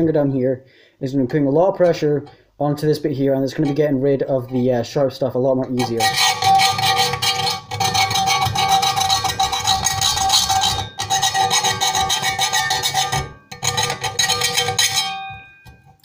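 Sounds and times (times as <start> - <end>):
file rasping on metal: 5.8 - 15.2.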